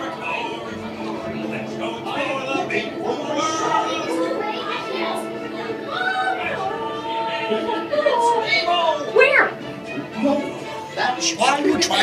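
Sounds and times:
background music: 0.0s - 12.0s
indistinct children's voices: 0.0s - 12.0s.

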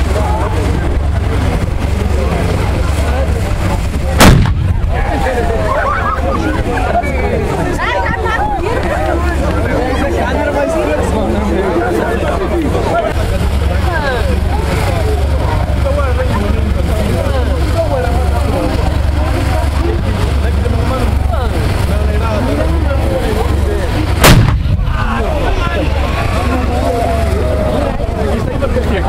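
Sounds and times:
crowd talking: 0.0s - 29.0s
steady low rumble: 0.0s - 29.0s
artillery gun firing: 4.2s - 5.2s, 24.2s - 25.2s.

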